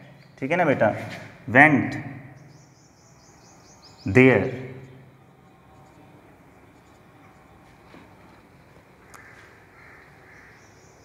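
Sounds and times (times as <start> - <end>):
distant bird call: 2.2 - 6.0, 6.6 - 11.0.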